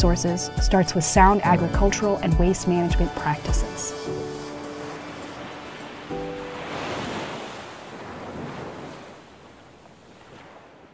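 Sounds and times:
ocean surf washing ashore: 1.6s - 10.9s.

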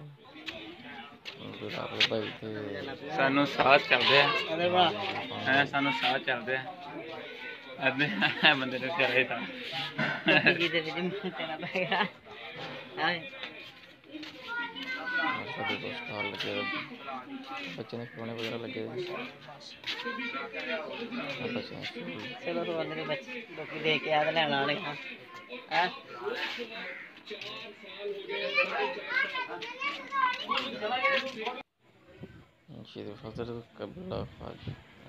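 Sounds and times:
children talking and calling out: 0.0s - 32.6s.

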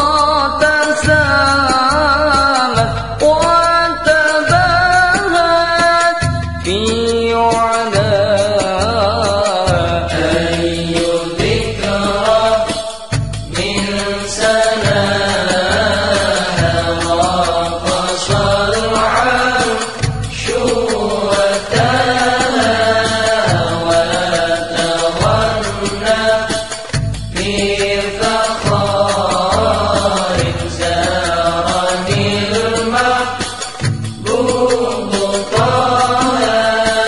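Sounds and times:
voices singing devotional song: 0.0s - 37.0s
bass line: 13.2s - 33.1s.

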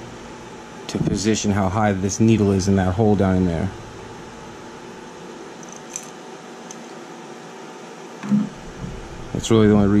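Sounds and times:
room tone hiss: 0.0s - 10.0s
small metal parts clicking: 5.6s - 6.8s.

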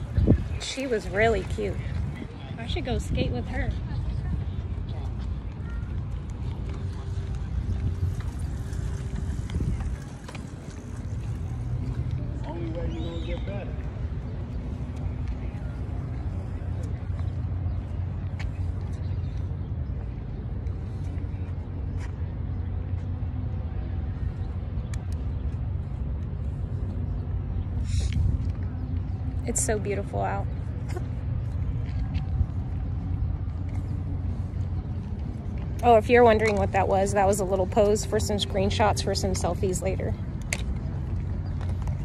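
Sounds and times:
steady low rumble: 0.0s - 42.0s.

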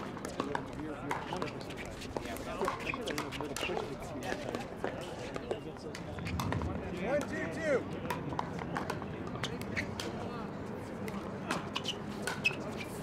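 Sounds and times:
people's voices: 0.3s - 11.9s.

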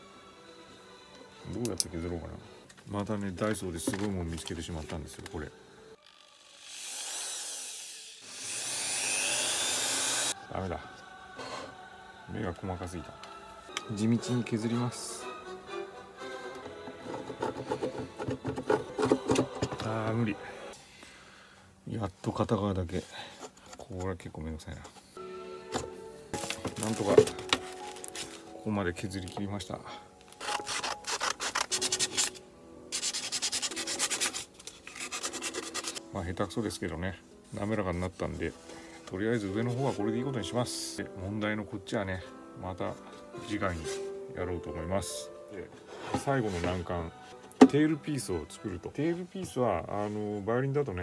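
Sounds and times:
electric drill whining: 6.0s - 10.4s
sandpaper rubbing on wood: 30.4s - 32.3s, 32.9s - 36.0s
abrasive bit sanding wood: 35.0s - 36.0s.

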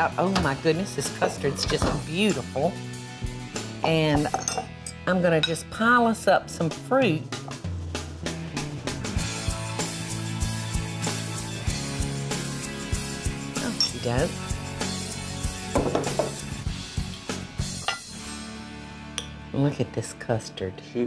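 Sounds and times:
background music: 0.0s - 21.0s
metal spoon clinking against glass: 4.2s - 5.6s, 13.7s - 14.1s.

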